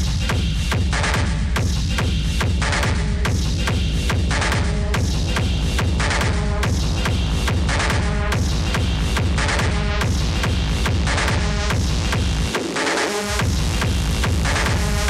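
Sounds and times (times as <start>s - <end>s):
heavy kick drum pounding: 0.0s - 12.6s, 13.4s - 15.0s
hard techno music: 0.0s - 15.0s.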